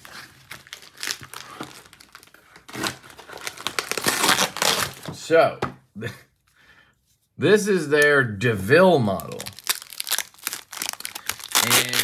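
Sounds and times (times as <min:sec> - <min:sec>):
packaging tearing and crinkling: 0:00.0 - 0:05.1, 0:09.0 - 0:12.0.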